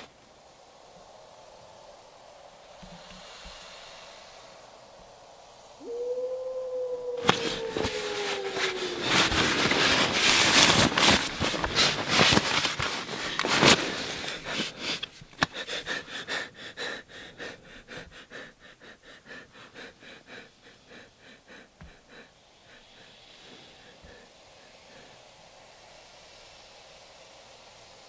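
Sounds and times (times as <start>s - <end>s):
long hooting call: 5.8s - 11.9s
rustling and crackling: 7.2s - 15.7s.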